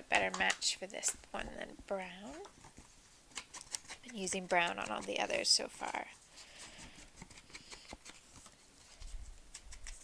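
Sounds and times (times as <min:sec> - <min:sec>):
paper rustling: 0:02.5 - 0:10.0.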